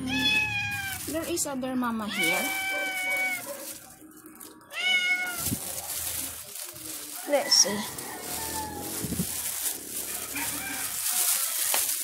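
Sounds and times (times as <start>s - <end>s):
cat meowing: 0.0s - 1.1s, 2.0s - 3.5s, 4.7s - 5.6s.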